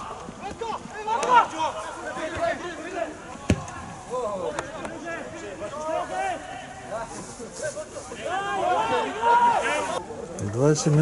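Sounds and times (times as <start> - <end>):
players shouting: 0.0 - 6.9, 7.8 - 10.2
football being kicked: 3.5 - 3.7.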